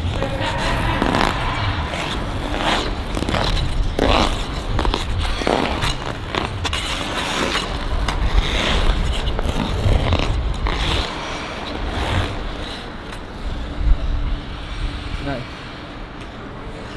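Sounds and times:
low rumble: 0.0 - 12.6
skate blades scraping ice: 0.0 - 13.7.

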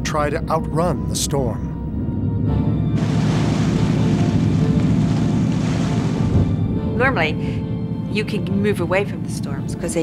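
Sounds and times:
dark background music: 0.0 - 10.0
water rushing past boat bow: 3.0 - 7.0.

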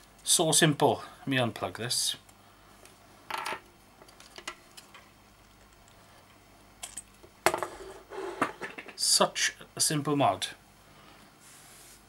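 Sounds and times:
short scrape on wooden bench: 7.7 - 8.6.

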